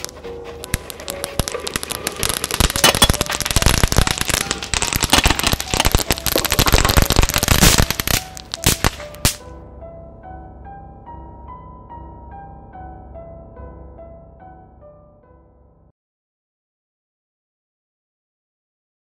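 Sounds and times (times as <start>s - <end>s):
dense crackling and popping: 0.0s - 9.4s
soft music with held notes: 0.0s - 15.9s.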